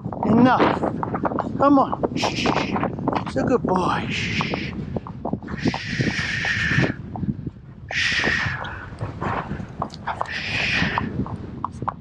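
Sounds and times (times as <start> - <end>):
hooves on tarmac: 0.0 - 12.0.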